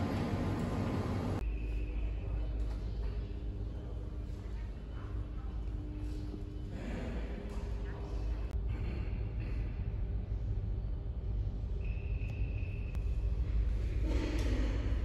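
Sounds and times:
metro station low rumble: 0.0 - 15.0.

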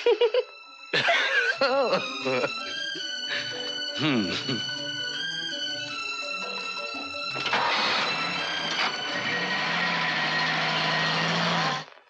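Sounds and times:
vehicle engine driving off: 7.4 - 12.0.

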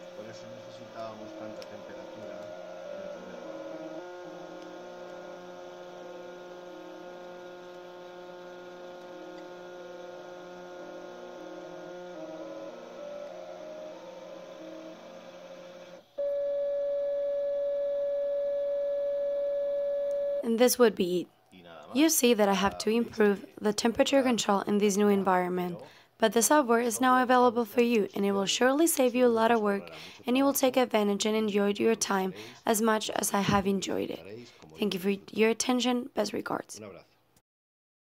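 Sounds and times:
stepper motors whining: 0.0 - 16.6.

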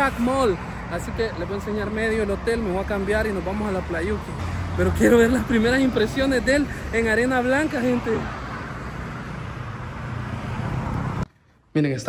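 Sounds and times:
cars passing: 0.0 - 12.0.

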